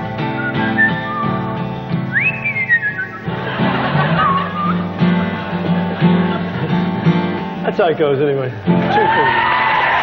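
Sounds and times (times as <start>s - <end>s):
acoustic guitar strumming: 0.0s - 9.2s
whistled melody: 0.1s - 3.5s, 4.2s - 5.1s.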